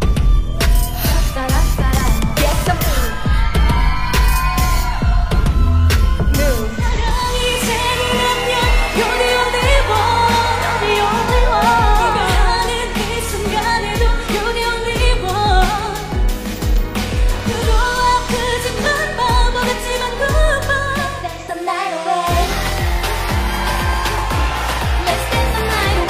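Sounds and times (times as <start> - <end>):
steady drum beat: 0.0 - 21.3, 22.3 - 26.0
woman singing: 6.2 - 16.4, 17.2 - 23.1, 25.0 - 26.0.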